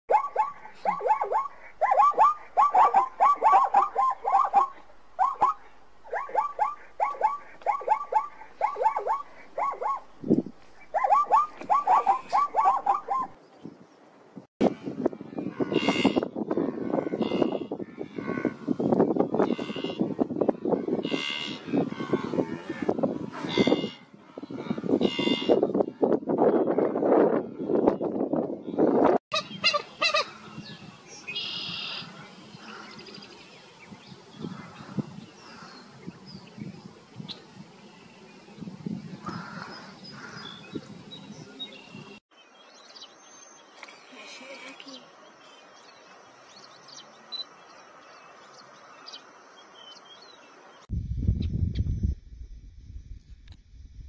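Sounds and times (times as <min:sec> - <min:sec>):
zebras barking: 0:00.1 - 0:10.2, 0:10.9 - 0:13.4.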